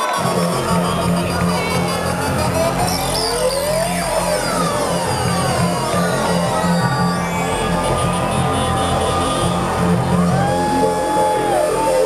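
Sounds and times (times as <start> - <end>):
synthesizer sweep rising in pitch: 0.0 - 12.0
steady low beat: 0.2 - 12.0.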